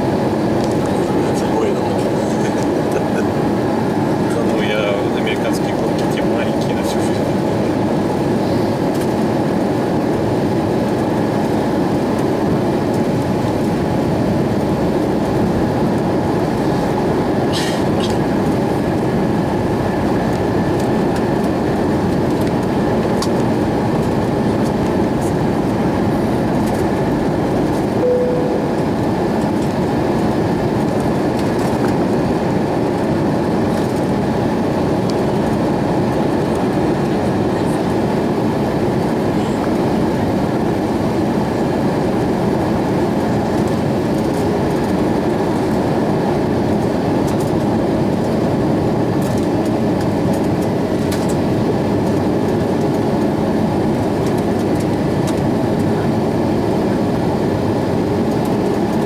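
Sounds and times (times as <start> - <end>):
jet engine drone: 0.0 - 59.0
brief faint tone: 28.0 - 29.0.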